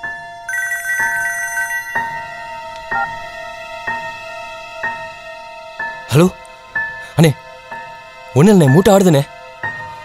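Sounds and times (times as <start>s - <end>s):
phone ringtone: 0.5s - 3.3s.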